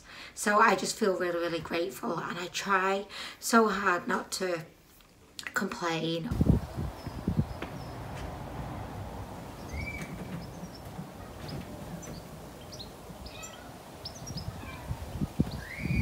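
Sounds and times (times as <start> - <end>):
low steady outdoor rumble: 5.7 - 16.0
birds chirping: 6.3 - 16.0.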